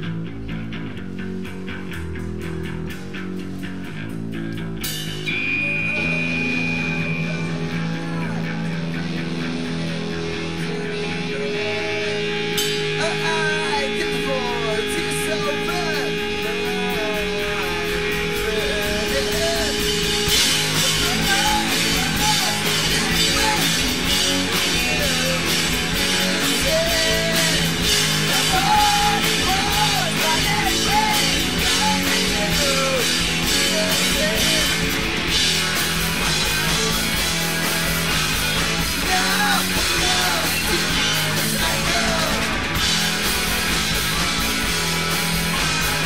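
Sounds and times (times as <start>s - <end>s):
bass guitar: 0.0s - 46.0s
drums: 0.0s - 46.0s
electric guitars: 0.0s - 46.0s.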